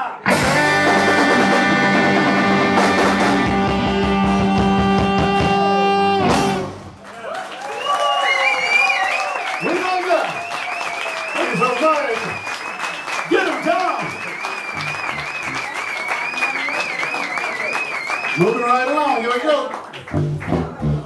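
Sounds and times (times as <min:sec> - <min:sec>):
audience applauding and shouting: 0:00.0 - 0:20.8
live blues band: 0:00.2 - 0:07.0, 0:14.6 - 0:18.4, 0:20.0 - 0:21.0.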